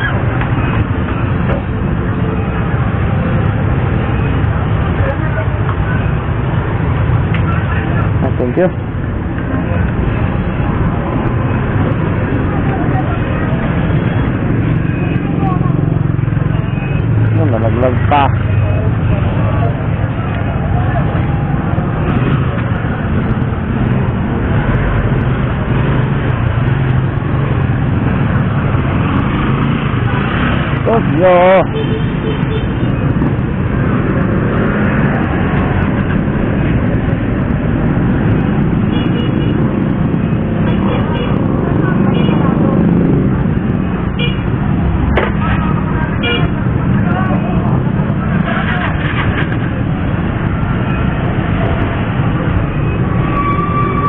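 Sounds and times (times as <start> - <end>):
motorcycle engine hum: 0.0 - 53.2
street traffic rumble: 0.0 - 54.0.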